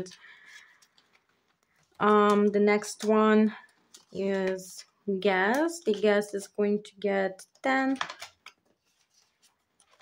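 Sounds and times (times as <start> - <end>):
paper banknotes rustling: 0.0 - 3.0, 8.0 - 10.0
plastic pouch handled: 0.0 - 4.9, 7.9 - 10.0.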